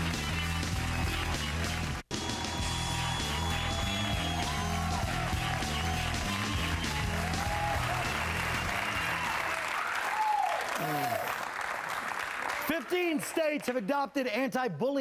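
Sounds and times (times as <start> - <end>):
tv bumper music with bass: 0.0 - 9.2
audience whoops: 0.0 - 11.6
audience applause and cheering: 0.0 - 13.9.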